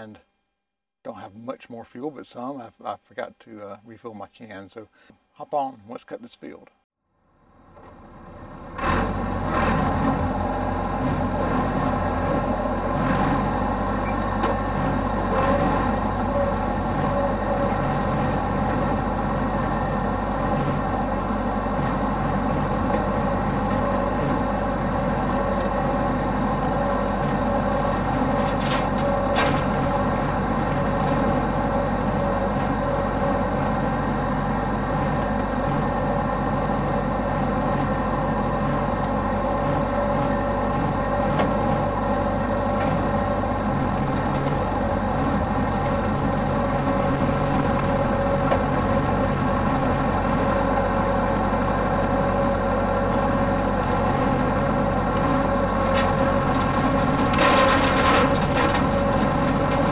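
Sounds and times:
diesel tractor engine running: 0:07.2 - 0:59.9.

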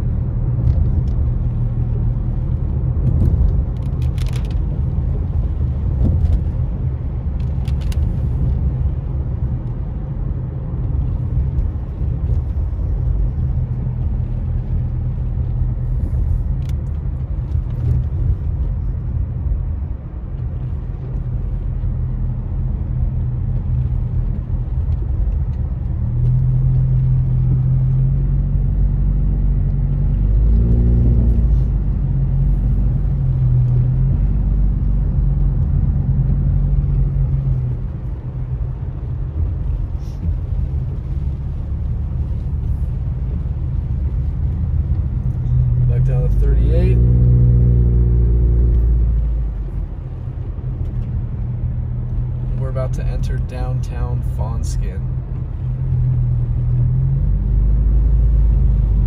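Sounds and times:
car engine: 0:00.0 - 0:59.0
road noise on wet road: 0:00.0 - 0:59.0.

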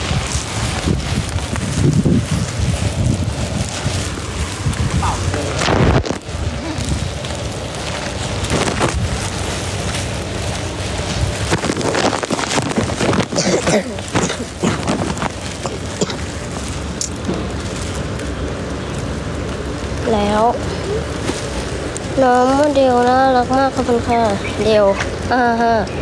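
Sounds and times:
wind on microphone: 0:00.0 - 0:19.2
rain falling: 0:00.0 - 0:26.0.

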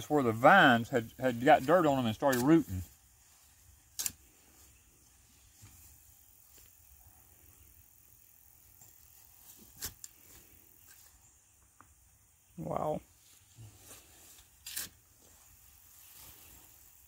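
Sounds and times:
digging fork scraping dry soil: 0:00.0 - 0:06.8, 0:08.9 - 0:11.2, 0:13.7 - 0:17.0.

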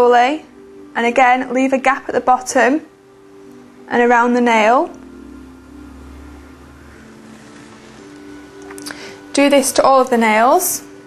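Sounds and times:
low hum: 0:00.0 - 0:11.0
soft droning background music: 0:00.0 - 0:11.0.

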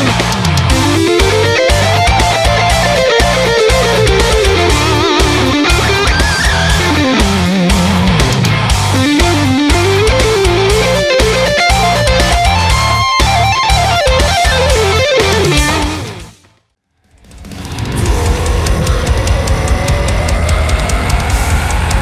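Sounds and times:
lead electric guitar melody: 0:00.0 - 0:16.4
chugging rhythm guitars: 0:00.0 - 0:16.6, 0:17.2 - 0:22.0
drums: 0:00.0 - 0:22.0.

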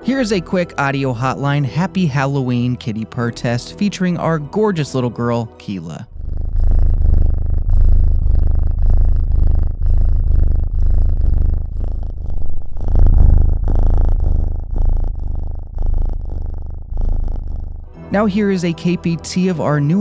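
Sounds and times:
cat purring: 0:00.0 - 0:20.0.

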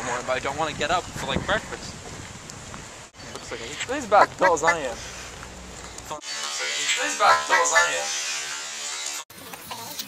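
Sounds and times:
steady buzz: 0:04.2 - 0:09.2.

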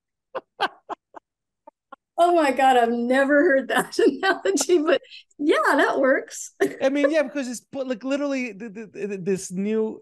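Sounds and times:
laughter bursts: 0:00.3 - 0:02.1.

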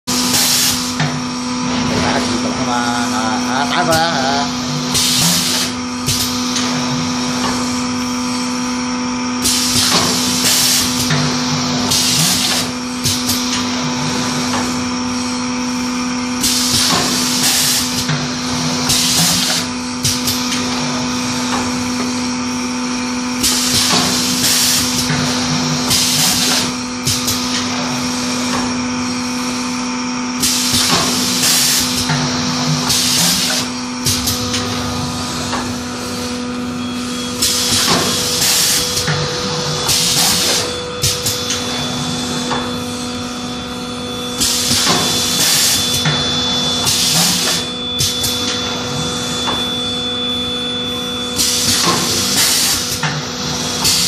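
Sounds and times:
machine humming: 0:00.1 - 0:54.0.

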